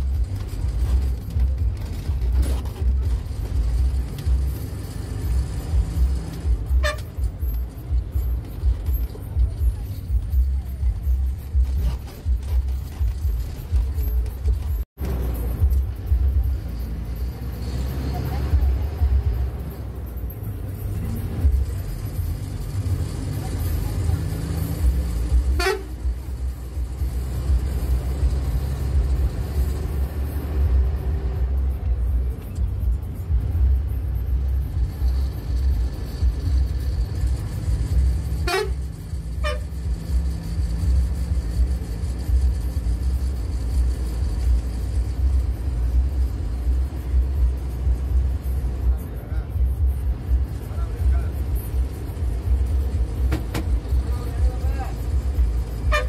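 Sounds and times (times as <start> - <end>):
bus diesel engine running: 0.0 - 56.0
short horn toots: 6.7 - 7.2, 25.4 - 26.1, 38.4 - 39.9.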